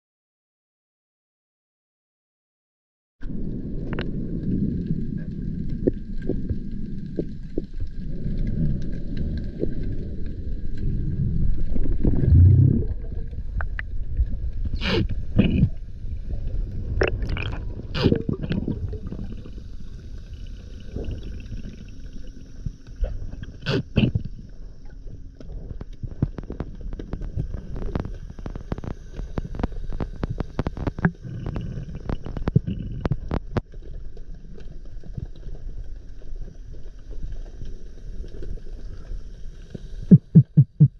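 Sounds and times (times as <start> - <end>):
muffled underwater rumble: 3.2 - 40.9.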